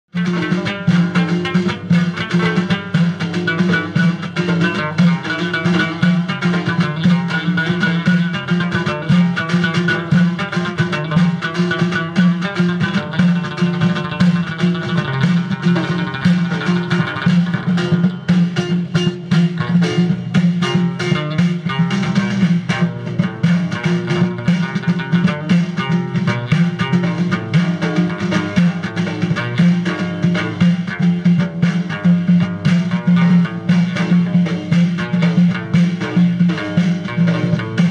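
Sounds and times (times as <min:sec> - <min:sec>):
frame drums beating: 0:00.1 - 0:37.9
lute plucked in quick notes: 0:00.1 - 0:37.9.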